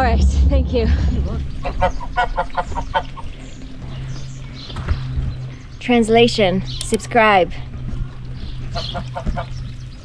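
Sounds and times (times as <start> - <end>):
goose honking: 1.6 - 3.4, 8.7 - 9.6.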